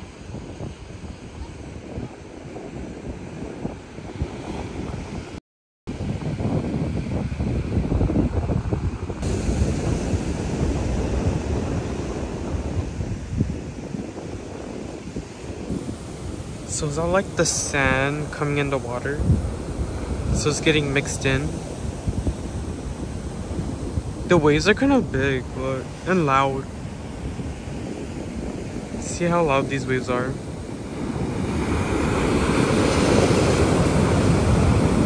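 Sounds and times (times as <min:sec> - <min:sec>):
ocean surf washing on beach: 0:00.0 - 0:35.0
wind buffeting microphone: 0:00.0 - 0:35.0.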